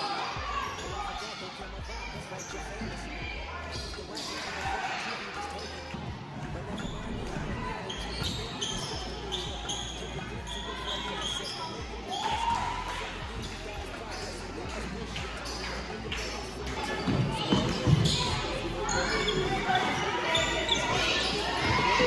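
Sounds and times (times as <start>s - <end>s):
echoing chatter and calls: 0.0s - 22.0s
sneakers squeaking: 0.1s - 22.0s.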